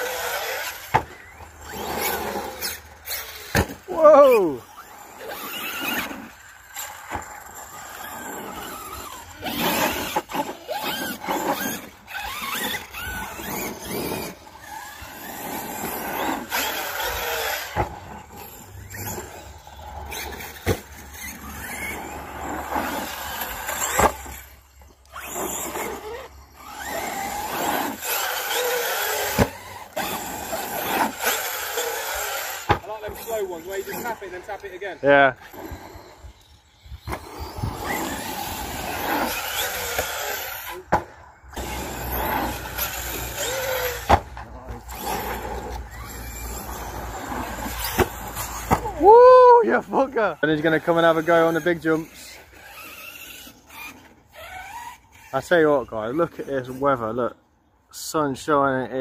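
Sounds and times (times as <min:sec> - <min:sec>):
tyres scrabbling on dirt: 0:00.0 - 0:49.0, 0:49.8 - 0:57.3
electric motors whining: 0:00.0 - 0:57.7.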